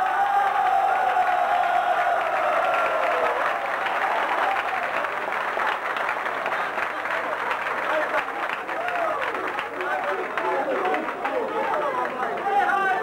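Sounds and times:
crowd applause: 0.0s - 13.0s.

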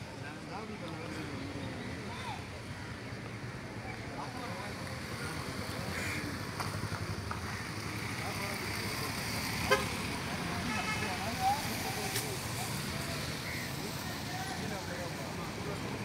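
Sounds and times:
low traffic rumble: 0.0s - 16.0s
vehicle horn toot: 9.7s - 9.9s.

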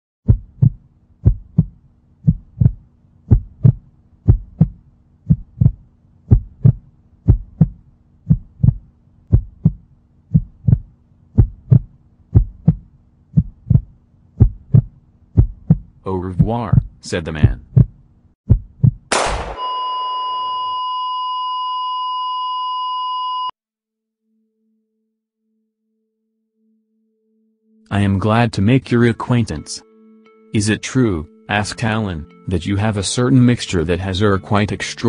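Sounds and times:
heartbeat thumps: 0.2s - 19.1s.

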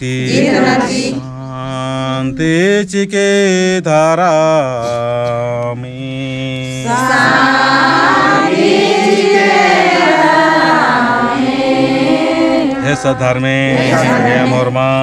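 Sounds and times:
group of voices chanting: 0.1s - 1.2s, 6.8s - 15.0s
person chanting long note: 12.6s - 15.0s.

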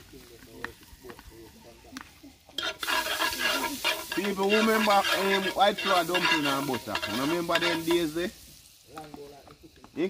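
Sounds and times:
butter sizzling in a pot: 2.3s - 10.0s.

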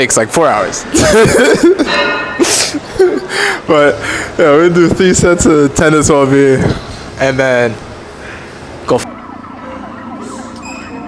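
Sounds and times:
man laughing: 0.9s - 4.0s.

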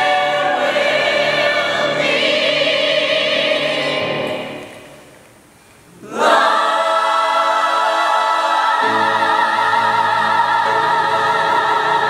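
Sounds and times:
choir singing sustained chords: 0.0s - 5.2s, 6.0s - 12.0s.

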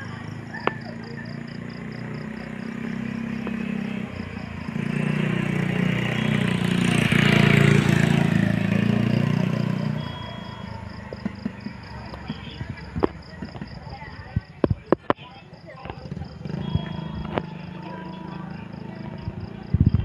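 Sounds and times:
vehicle engine passing by: 0.0s - 14.2s, 16.0s - 20.0s.

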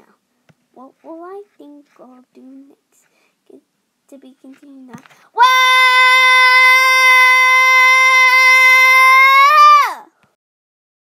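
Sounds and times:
child screaming: 5.4s - 10.1s.

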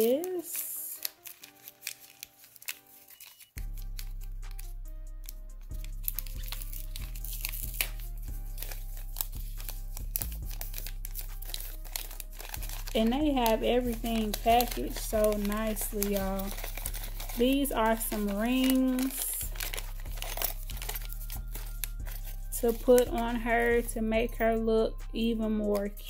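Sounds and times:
paper packaging crinkling: 0.0s - 23.9s
background music with bass line: 3.6s - 18.5s.

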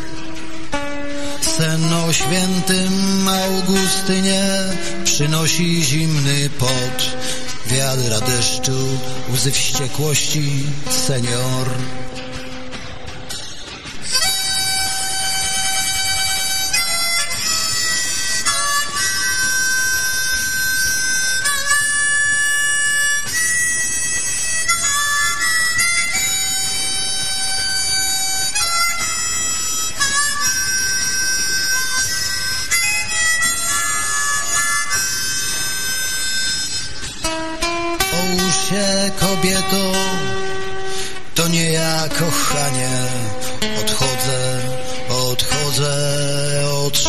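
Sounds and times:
blues harmonica: 0.0s - 47.0s.

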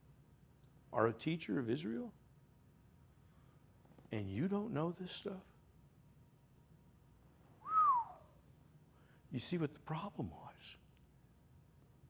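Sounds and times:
short whistled note: 7.6s - 8.4s.

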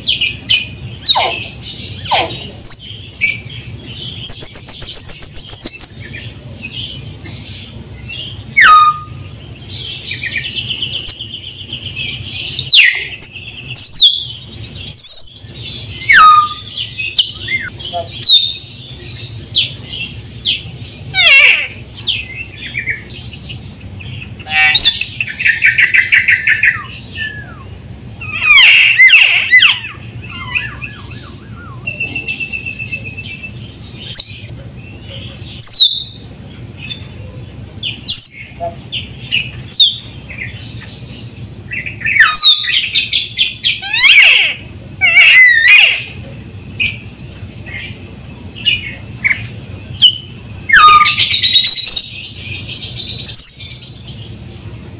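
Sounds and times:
bird singing varied song: 0.0s - 54.9s.

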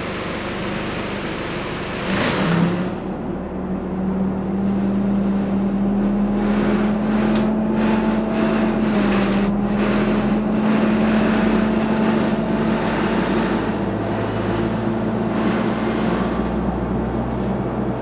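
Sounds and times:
bus diesel engine droning: 0.0s - 18.0s.

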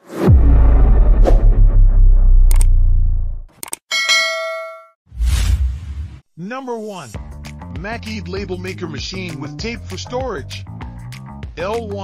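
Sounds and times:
low bass tone: 0.3s - 3.5s
notification bell ding: 3.9s - 4.9s.

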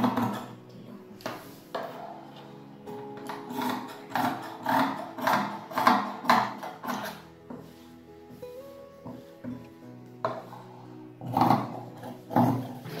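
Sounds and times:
background music: 0.0s - 13.0s
shears cutting fabric: 3.2s - 7.7s, 11.2s - 13.0s.

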